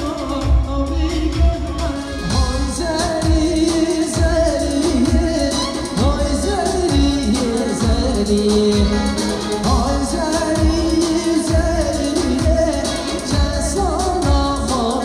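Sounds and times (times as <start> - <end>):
drum beat: 0.0 - 15.0
keyboard: 0.0 - 15.0
man singing amplified: 0.0 - 15.0.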